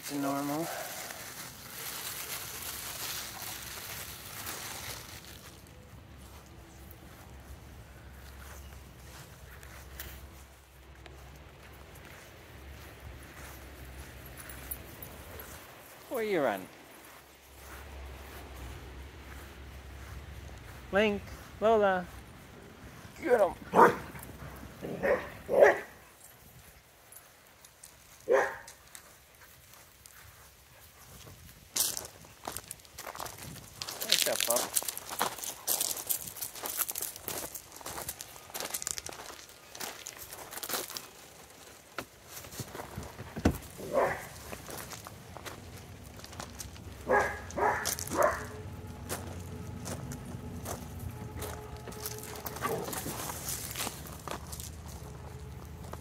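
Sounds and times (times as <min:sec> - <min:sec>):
footsteps crunching on gravel: 0:00.0 - 0:56.0
dogs barking: 0:23.6 - 0:26.2, 0:28.2 - 0:28.8, 0:43.7 - 0:44.5, 0:46.9 - 0:50.1, 0:51.6 - 0:53.5.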